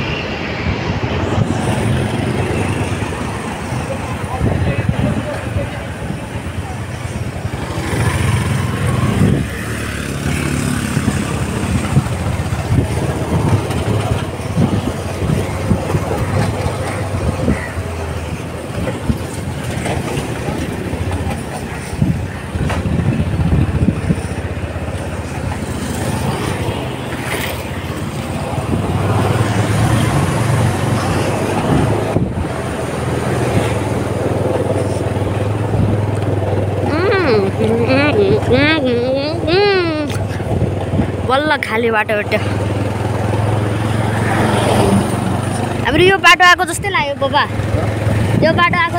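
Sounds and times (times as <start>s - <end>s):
road and wind noise: 0.0s - 48.9s
vehicle engine humming: 1.2s - 48.9s.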